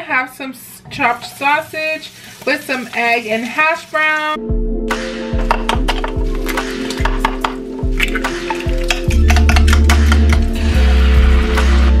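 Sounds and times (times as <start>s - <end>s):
light sizzle: 1.0s - 4.4s
background music: 4.2s - 12.0s.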